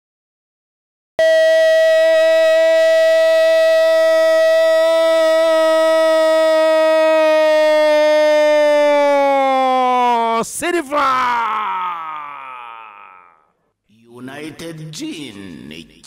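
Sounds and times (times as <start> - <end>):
commentator's long held shout: 1.2 - 13.5.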